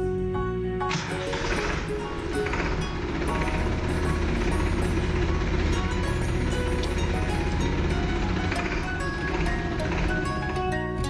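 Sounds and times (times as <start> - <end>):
background music: 0.0 - 11.0
tractor diesel engine running: 0.0 - 11.0.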